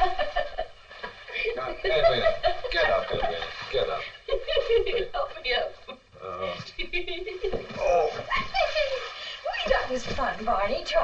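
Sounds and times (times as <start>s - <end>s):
film dialogue voices: 5.0s - 6.8s, 7.5s - 10.9s.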